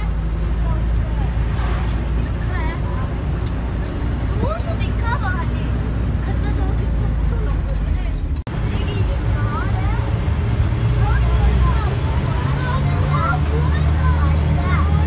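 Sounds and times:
vehicle engine and road noise: 0.0 - 15.0.

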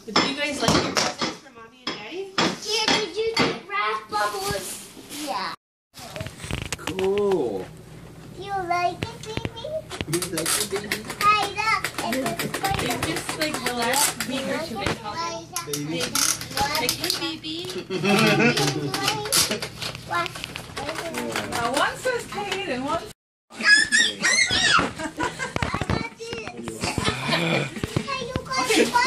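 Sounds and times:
paper crackling and rustling: 6.0 - 7.4.

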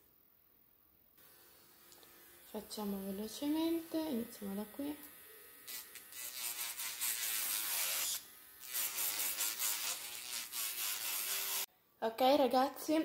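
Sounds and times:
electric nail drill whining: 3.6 - 11.7.

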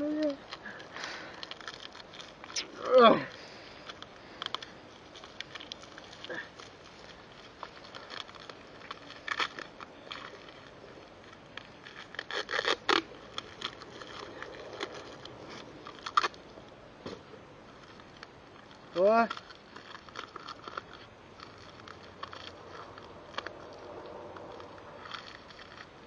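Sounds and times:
handling rustle: 0.0 - 26.0
tape ripping off roll: 0.0 - 26.0.

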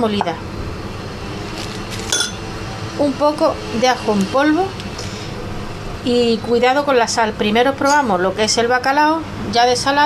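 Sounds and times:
glass jars clinking: 2.1 - 2.4.

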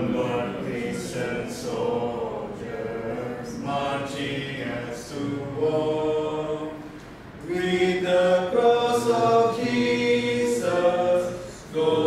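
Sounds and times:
small group singing a hymn: 0.0 - 12.0.

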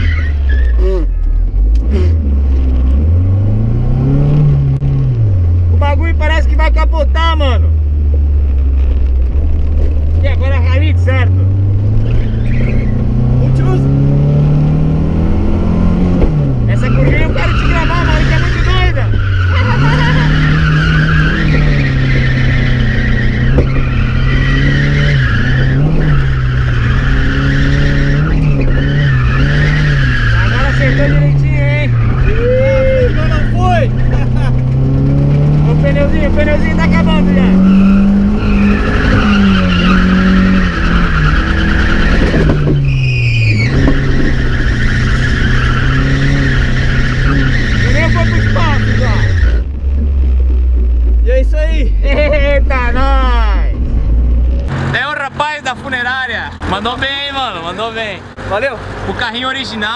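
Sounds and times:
tyres squealing: 0.0 - 1.3, 10.4 - 14.0, 16.6 - 49.7
car engine revving: 0.0 - 59.9.

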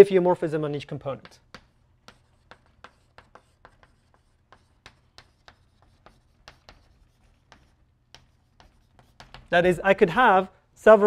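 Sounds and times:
chalk tapping and scratching: 1.0 - 9.9.

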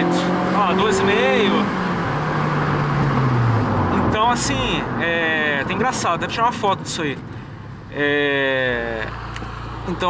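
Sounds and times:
car engine accelerating hard: 0.0 - 6.2.

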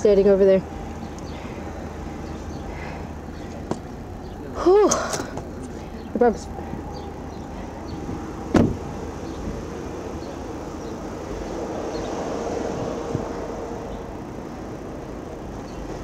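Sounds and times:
outdoor noise: 0.0 - 16.0
vehicle hum: 0.0 - 16.0
car door shutting: 8.5 - 8.9.

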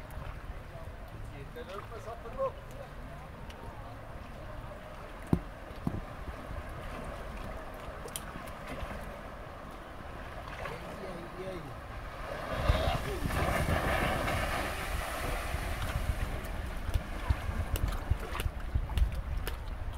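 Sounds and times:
wind buffeting microphone: 5.3 - 7.7, 11.9 - 19.9
river current rushing: 6.1 - 18.3.

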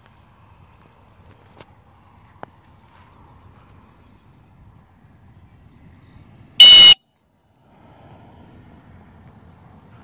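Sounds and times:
dog-training whistle blast: 6.6 - 7.0.

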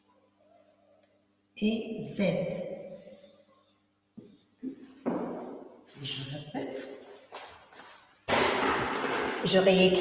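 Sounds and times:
thump: 5.0 - 5.6.

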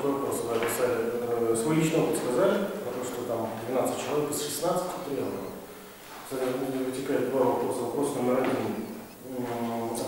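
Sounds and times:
person talking: 6.2 - 10.0.

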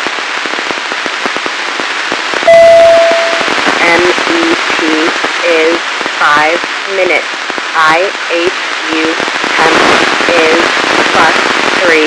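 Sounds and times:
radio static: 0.8 - 12.0
steady beep: 2.5 - 3.6
voice over radio: 3.4 - 7.2, 7.8 - 12.0.

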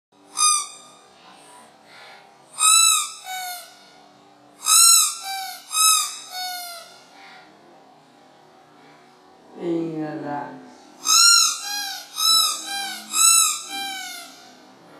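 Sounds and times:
rubber duck toy squeaking: 0.4 - 1.0, 2.6 - 3.8, 4.6 - 7.0, 11.0 - 14.5.

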